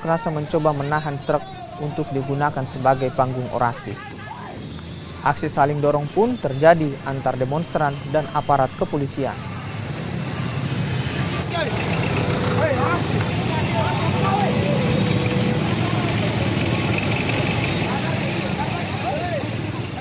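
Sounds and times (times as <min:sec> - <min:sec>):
crowd shouting and talking: 0:00.0 - 0:20.0
motorbike and traffic engines: 0:00.0 - 0:20.0.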